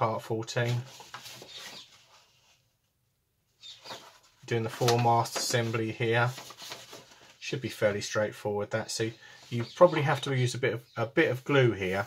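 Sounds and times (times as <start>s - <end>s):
paper sheet rustling: 0.6s - 2.6s, 3.8s - 7.8s.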